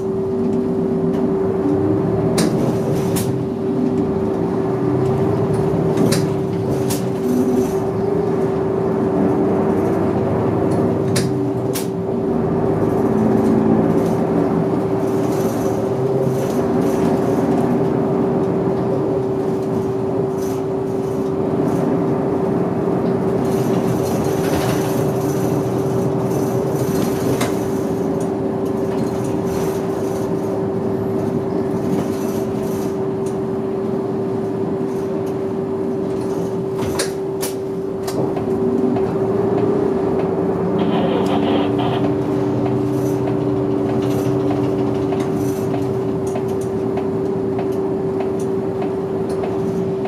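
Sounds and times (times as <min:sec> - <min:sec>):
bus engine and road noise: 0:00.0 - 0:50.0
low drone: 0:40.7 - 0:42.5.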